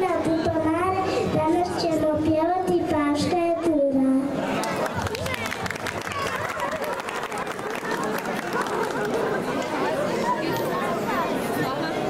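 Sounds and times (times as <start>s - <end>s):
crowd of children chattering: 0.0s - 12.0s.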